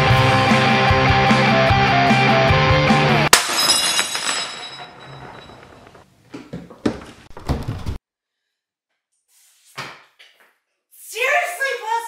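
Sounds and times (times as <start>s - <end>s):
background music: 0.0s - 3.3s
ceramic ornament smashing: 3.3s - 5.9s.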